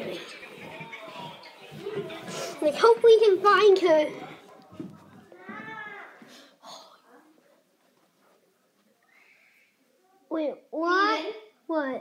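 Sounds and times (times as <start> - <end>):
faint high drawn-out call: 9.0 - 9.8.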